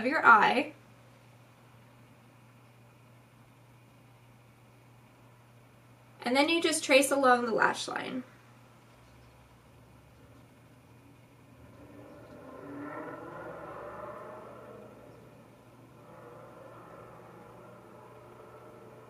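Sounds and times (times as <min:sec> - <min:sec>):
faint noise: 0:00.0 - 0:19.0
low steady hum: 0:00.0 - 0:19.0.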